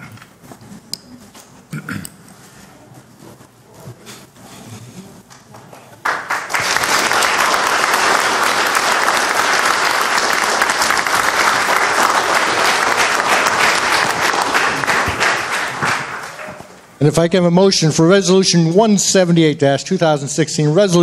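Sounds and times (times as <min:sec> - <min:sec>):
audience applauding: 0:05.3 - 0:16.9.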